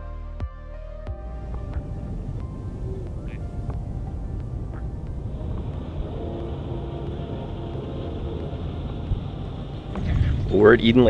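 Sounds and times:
faint background music: 0.0s - 11.0s
steady low rumble: 1.2s - 11.0s.

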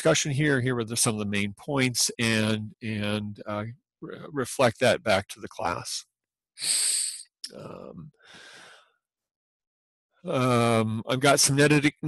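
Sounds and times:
person inhaling sharply: 8.2s - 8.8s.

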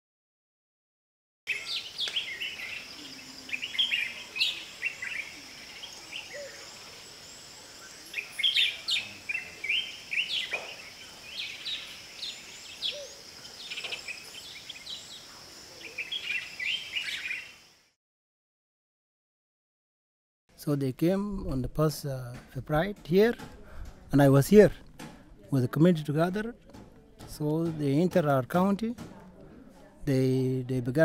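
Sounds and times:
insects droning: 1.5s - 18.0s
wild birds chirping: 1.5s - 18.0s.

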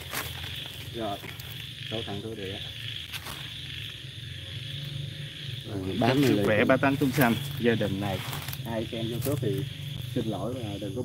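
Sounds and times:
night insects chirring: 0.0s - 11.0s.

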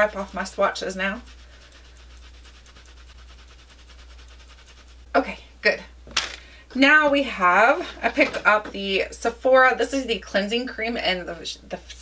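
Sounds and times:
cloth wipe rubbing skin: 0.0s - 5.2s
low steady hum: 0.0s - 12.0s.

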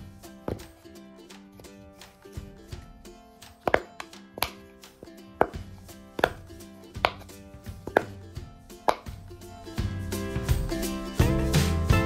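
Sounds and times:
silicone toy popping: 6.2s - 8.2s, 8.8s - 9.2s.

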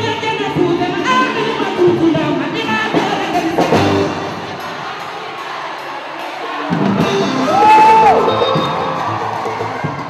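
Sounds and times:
live band music: 0.0s - 10.0s
crowd cheering: 4.4s - 10.0s.

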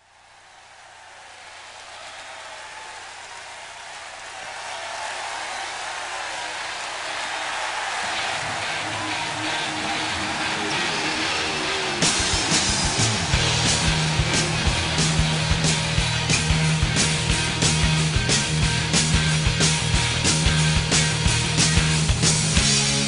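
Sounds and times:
concert crowd roaring and cheering: 0.0s - 23.0s.

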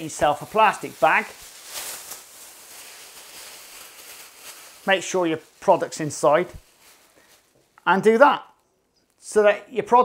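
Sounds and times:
plastic bag rustling: 0.0s - 8.2s.

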